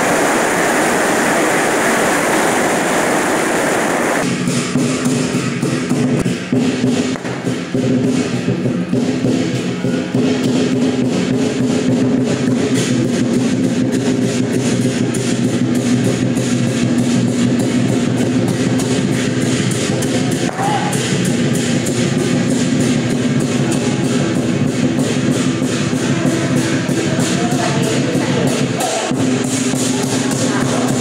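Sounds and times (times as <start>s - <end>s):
cymbals crashing: 0.0s - 31.0s
drums beating: 0.0s - 31.0s.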